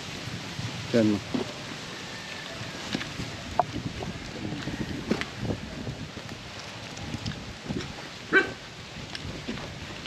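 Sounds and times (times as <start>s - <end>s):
short sharp bark: 8.3s - 8.6s.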